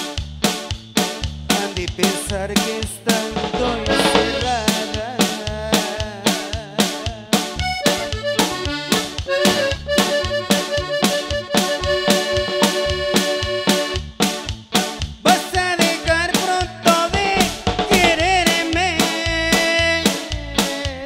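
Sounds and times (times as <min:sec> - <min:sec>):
accordion: 0:00.0 - 0:21.0
bass guitar: 0:00.0 - 0:21.0
drum kit beat: 0:00.0 - 0:21.0.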